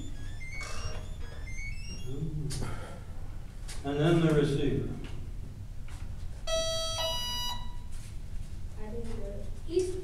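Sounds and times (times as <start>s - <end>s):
electronic two-note startup beep: 0.0s - 2.2s.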